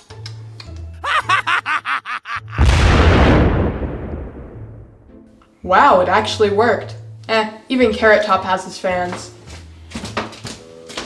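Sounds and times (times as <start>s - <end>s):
laughter: 1.0s - 2.6s
loud explosion: 2.6s - 5.1s.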